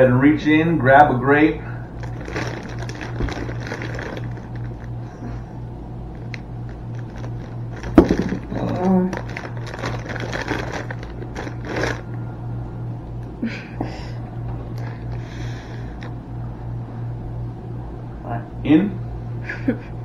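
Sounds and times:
low hum: 0.0 - 20.0
plastic bag crinkling: 2.0 - 5.4, 6.1 - 12.1.

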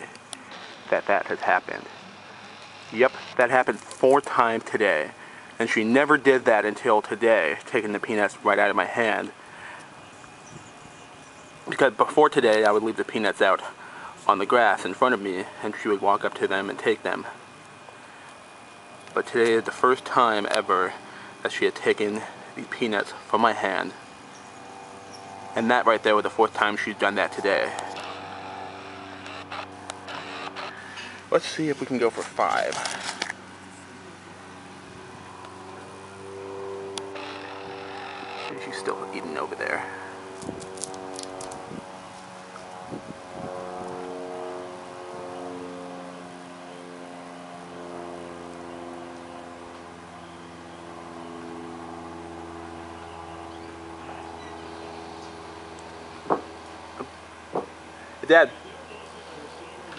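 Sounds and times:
engine running: 0.0 - 59.9
low mechanical hum: 0.0 - 59.9.

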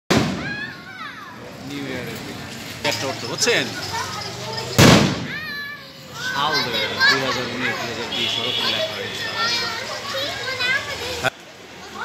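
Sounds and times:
firework shell bang: 0.1 - 0.6, 4.8 - 5.4.

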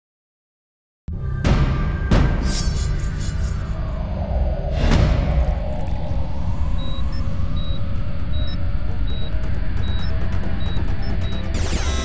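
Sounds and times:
steady low electronic drone: 1.1 - 12.0.

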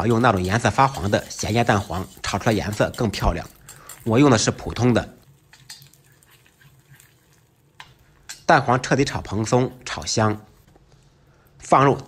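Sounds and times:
metal ladle scraping a wok: 0.0 - 4.1
egg yolk sizzling in oil: 0.0 - 9.1.

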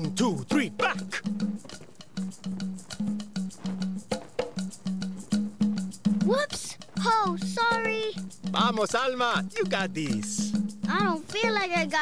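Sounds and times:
short repeated drum notes: 0.0 - 11.6.

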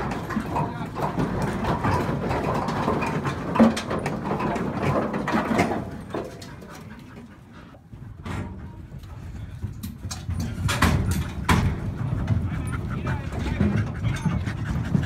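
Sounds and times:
hooves clattering in metal crate: 0.0 - 15.0.

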